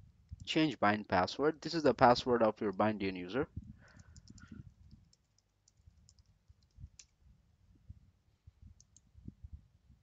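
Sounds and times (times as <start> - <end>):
mouse clicks: 3.8 - 7.2, 8.8 - 9.1
keyboard keystrokes: 3.9 - 7.1.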